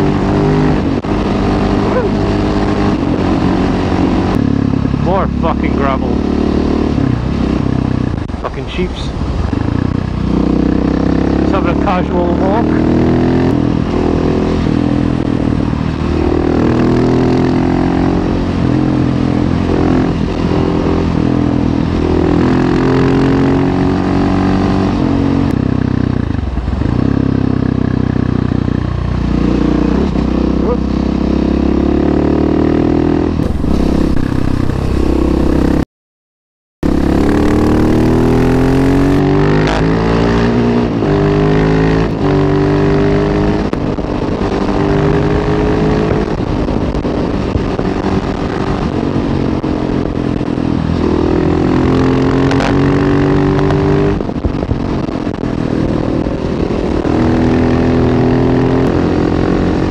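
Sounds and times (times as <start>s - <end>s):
motorcycle engine accelerating: 0.0s - 8.4s, 9.1s - 35.9s, 36.8s - 59.9s.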